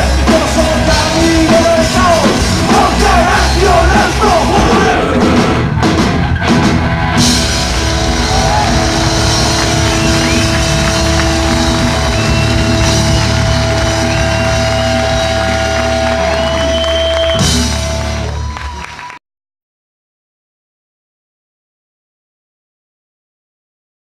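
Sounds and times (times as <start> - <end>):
punk rock band playing live: 0.0 - 18.6.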